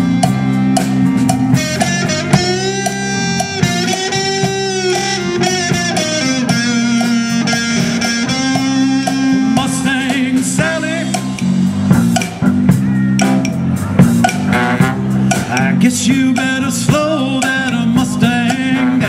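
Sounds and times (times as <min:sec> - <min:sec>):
bass guitar: 0:00.0 - 0:19.0
drums: 0:00.0 - 0:19.0
electric guitar: 0:00.0 - 0:19.0.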